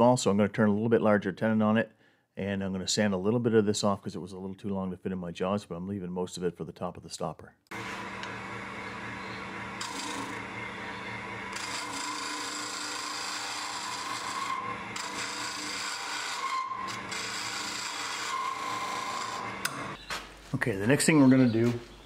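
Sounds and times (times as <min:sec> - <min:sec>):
lathe motor hum: 0:07.7 - 0:20.0
turning tool shaving wood: 0:07.7 - 0:20.0.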